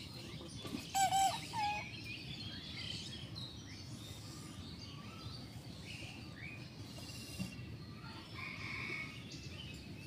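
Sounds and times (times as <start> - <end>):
steady background noise: 0.0 - 10.0
birds calling: 0.2 - 2.3.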